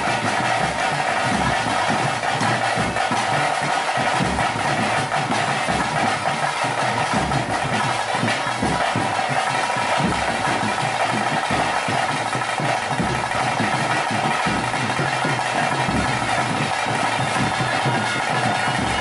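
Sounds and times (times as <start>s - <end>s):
drums beating: 0.0s - 19.0s.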